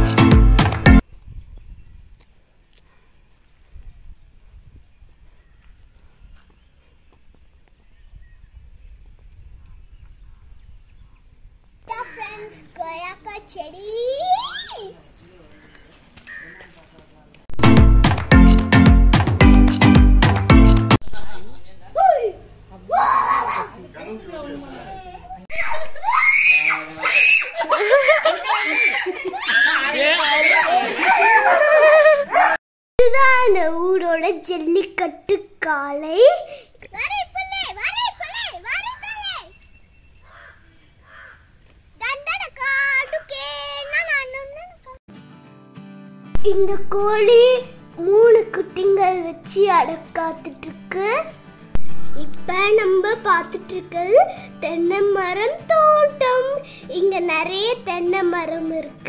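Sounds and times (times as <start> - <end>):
child squealing and laughing: 14.1 - 15.0, 22.0 - 23.8, 25.5 - 32.6
child's footsteps on dirt: 14.8 - 17.4.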